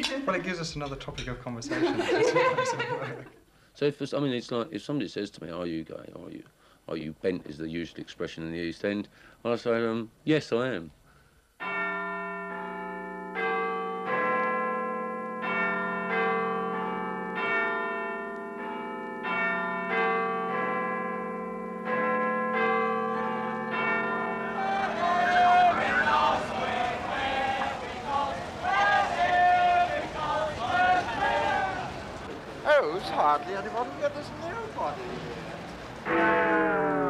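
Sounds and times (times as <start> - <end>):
church bells ringing: 11.6 - 31.5, 36.0 - 37.0
hubbub of voices: 24.6 - 35.5.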